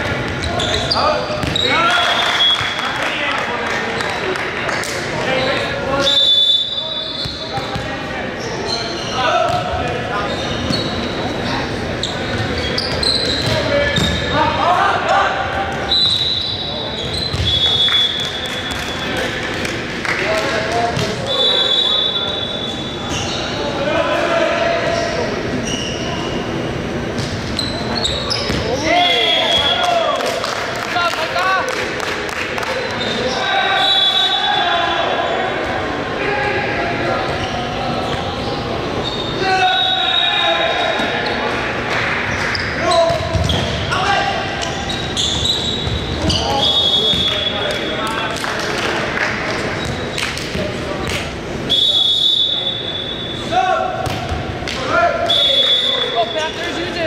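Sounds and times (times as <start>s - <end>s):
sneakers squeaking on hardwood: 0.2s - 1.8s, 7.1s - 11.2s, 11.9s - 14.4s, 16.0s - 17.8s, 27.1s - 28.9s, 42.5s - 44.0s, 44.6s - 47.4s, 49.7s - 50.7s
ball bouncing on wooden court: 1.4s - 1.6s, 12.9s - 14.2s, 17.3s - 17.6s, 28.4s - 28.7s, 43.1s - 43.8s, 54.0s - 54.5s.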